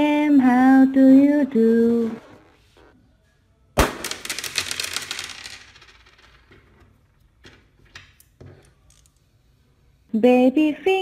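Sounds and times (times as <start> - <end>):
small pieces clattering on table: 4.0 - 6.9.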